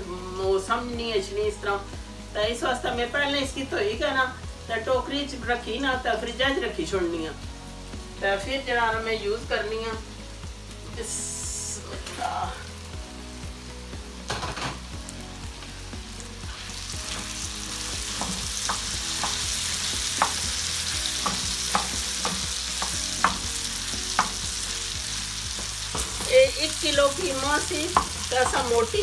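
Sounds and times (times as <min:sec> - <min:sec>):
meat sizzling on a hot pan: 0:00.7 - 0:29.0
wooden spoon scraping a pan: 0:25.5 - 0:29.0.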